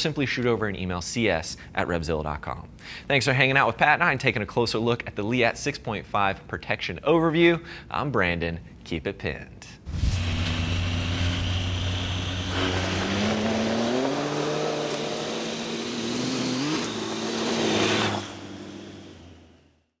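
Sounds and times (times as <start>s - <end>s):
motorcycle engine revving: 9.9s - 19.6s.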